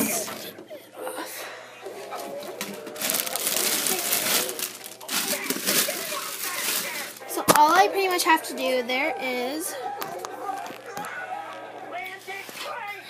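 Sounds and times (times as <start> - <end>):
plastic wrap crinkling: 2.1 - 7.7.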